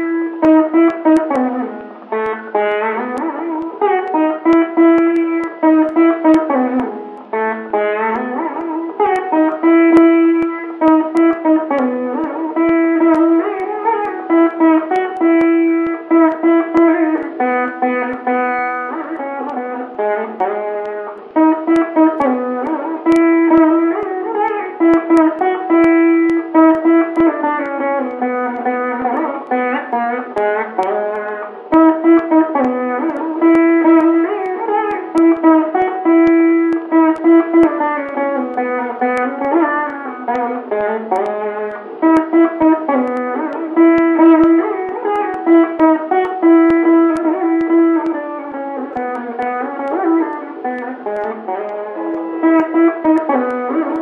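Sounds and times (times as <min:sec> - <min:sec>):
plucked string instrument melody: 0:00.0 - 0:54.0.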